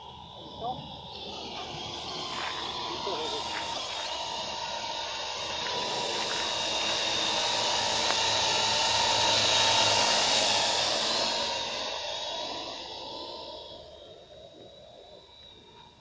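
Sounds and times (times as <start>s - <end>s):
drone propellers whining: 0.0s - 16.0s.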